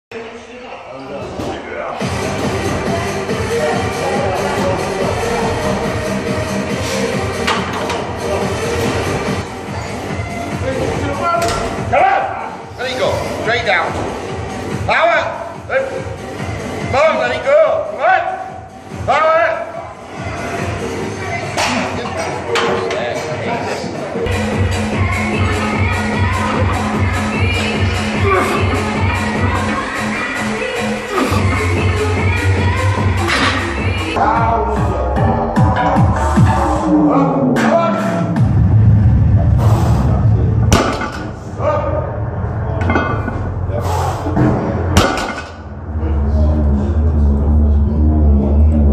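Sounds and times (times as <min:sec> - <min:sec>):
background music: 0:00.2 - 0:48.9
voices: 0:16.8 - 0:38.4.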